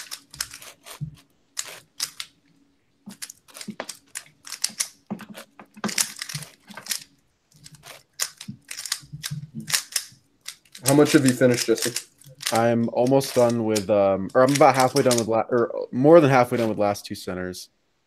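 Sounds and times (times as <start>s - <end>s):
puzzle cube plastic clacks: 3.1s - 15.3s.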